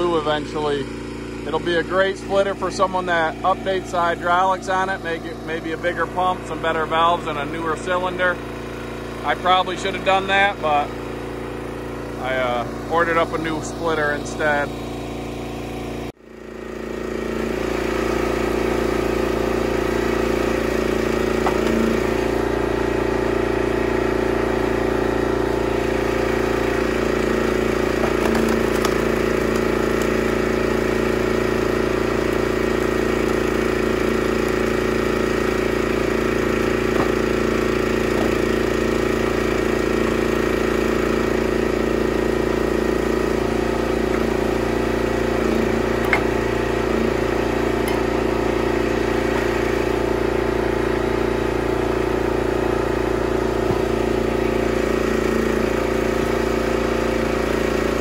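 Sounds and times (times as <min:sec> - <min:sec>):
log splitter engine running: 0:00.0 - 0:58.0.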